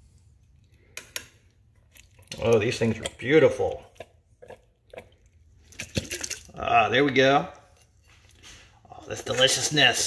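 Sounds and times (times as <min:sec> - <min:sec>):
tomatoes plopping into a pot: 0:04.0 - 0:06.6.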